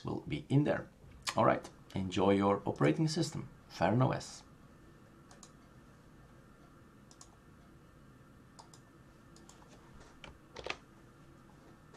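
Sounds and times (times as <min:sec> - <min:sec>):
computer mouse and keyboard clicks: 0:05.3 - 0:05.6, 0:07.1 - 0:07.4, 0:08.6 - 0:08.8, 0:09.4 - 0:10.8.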